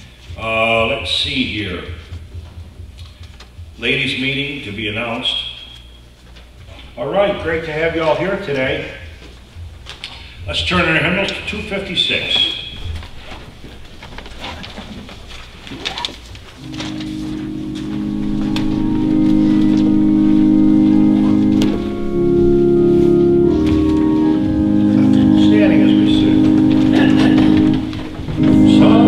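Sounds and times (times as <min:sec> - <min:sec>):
organ playing hymn chords: 0:00.0 - 0:02.5, 0:07.0 - 0:13.9, 0:16.4 - 0:29.0.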